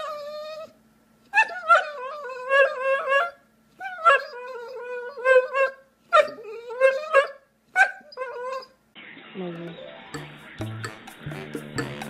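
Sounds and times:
dog whining: 0:00.0 - 0:08.8
music with a beat: 0:10.1 - 0:12.0.

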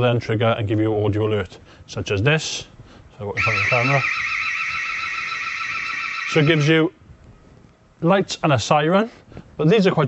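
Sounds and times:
warbling electronic siren: 0:03.4 - 0:06.9.

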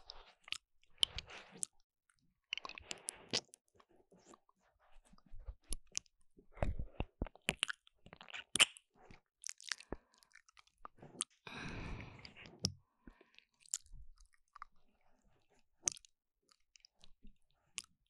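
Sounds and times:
wet mouth sounds: 0:00.0 - 0:01.7, 0:02.5 - 0:03.6, 0:04.2 - 0:14.7
lip smacks and clicks: 0:00.1 - 0:01.8, 0:02.4 - 0:11.4, 0:15.8 - 0:17.9.

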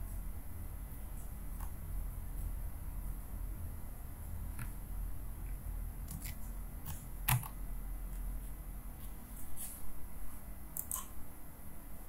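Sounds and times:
steady low hum: 0:00.0 - 0:12.0
keyboard keystrokes: 0:06.1 - 0:07.6.

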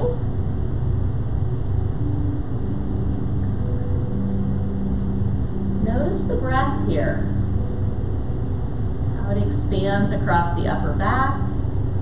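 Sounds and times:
air-handling machine hum: 0:00.0 - 0:12.0
faint held tone: 0:00.0 - 0:12.0.

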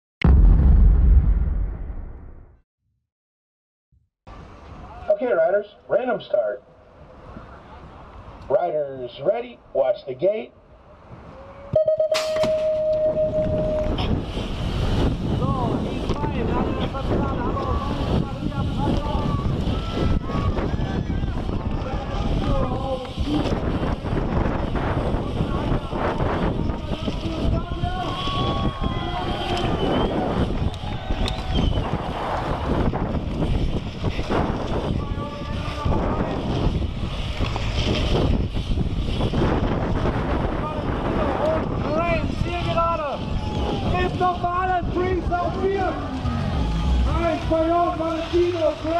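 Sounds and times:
rumble of bike tyres: 0:06.7 - 0:08.5, 0:13.1 - 0:48.9
wind noise on microphone: 0:11.0 - 0:48.9
start gate tones: 0:11.8 - 0:13.9.

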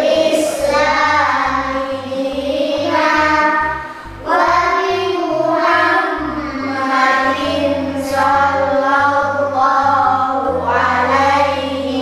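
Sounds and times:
children singing: 0:00.0 - 0:12.0
instrumental backing with bass line: 0:00.0 - 0:12.0.

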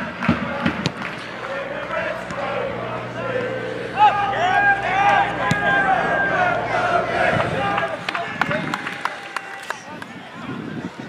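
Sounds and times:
footballers shouting: 0:00.0 - 0:11.0.

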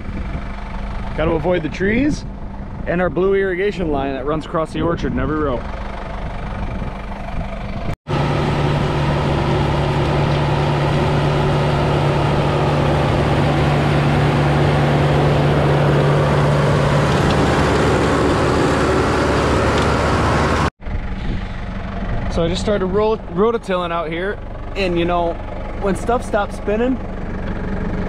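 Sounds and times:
low hum: 0:00.0 - 0:28.0
tractor diesel engine running: 0:00.0 - 0:28.0.

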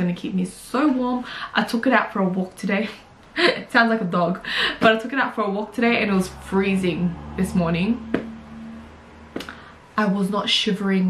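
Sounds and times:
woman talking: 0:00.0 - 0:08.4, 0:10.0 - 0:11.0.

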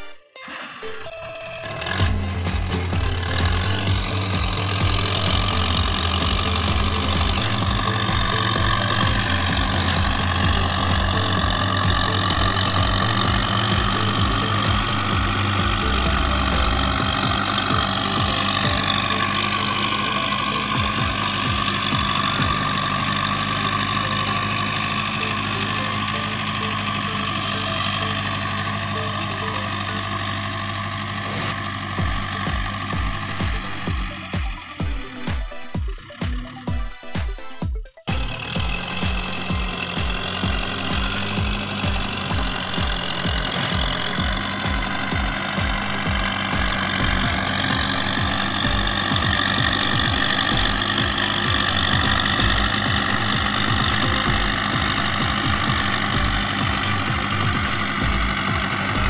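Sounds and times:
background music: 0:00.0 - 0:59.0
tractor engine under load: 0:00.0 - 0:59.0.

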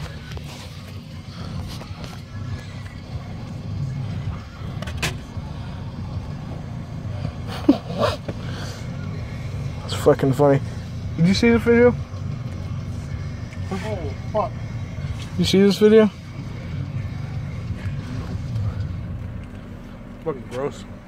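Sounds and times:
car idling rumble: 0:00.0 - 0:21.0.

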